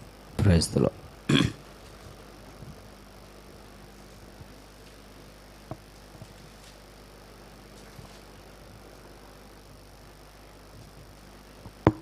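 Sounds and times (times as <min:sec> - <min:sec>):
person clearing throat: 0:01.3 - 0:01.6.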